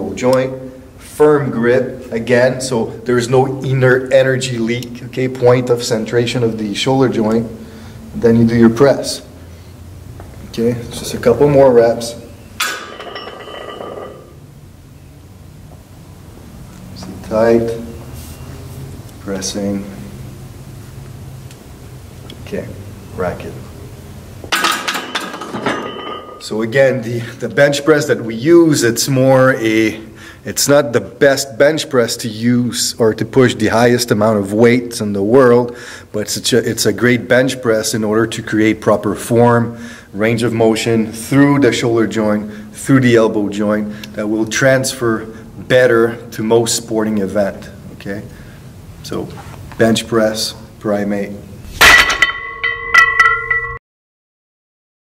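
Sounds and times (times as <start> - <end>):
barbell clanking onto metal rack: 12.6 - 14.2, 24.5 - 26.4
clinks of bar and plates: 12.6 - 14.4, 24.5 - 26.4, 51.8 - 53.8
metallic ringing: 12.6 - 14.4, 24.5 - 26.7, 51.8 - 53.8
metallic bell-like chiming: 52.2 - 53.8.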